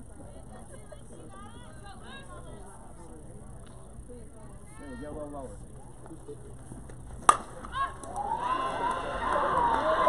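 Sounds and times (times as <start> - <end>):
bat hitting ball crack: 7.2 - 8.2
people shouting and cheering: 7.7 - 10.0.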